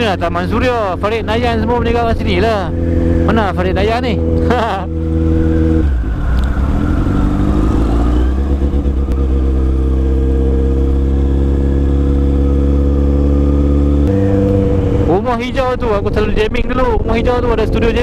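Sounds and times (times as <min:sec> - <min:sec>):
motorcycle engine while riding: 0:00.0 - 0:18.0.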